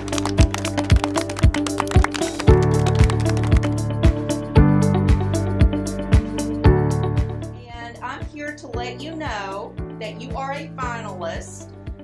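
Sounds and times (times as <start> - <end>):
kick drum beat: 0.0 - 4.7.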